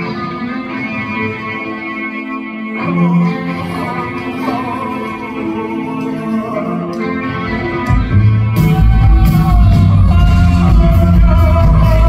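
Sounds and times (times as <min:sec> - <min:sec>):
distorted electric guitar chords: 0:00.0 - 0:12.0
live rock band playing: 0:00.0 - 0:12.0.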